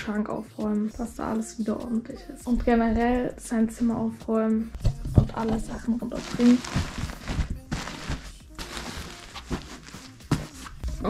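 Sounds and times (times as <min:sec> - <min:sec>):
light thumps and knocks: 0:04.8 - 0:05.8
fabric rustling: 0:04.8 - 0:10.9.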